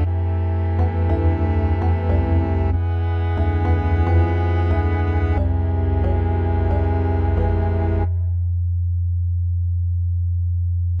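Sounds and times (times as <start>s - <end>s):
deep sub-bass note: 0.0s - 11.0s.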